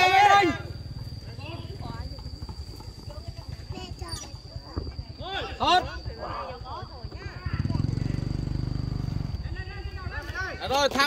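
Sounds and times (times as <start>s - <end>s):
loud shout: 0.0s - 0.8s.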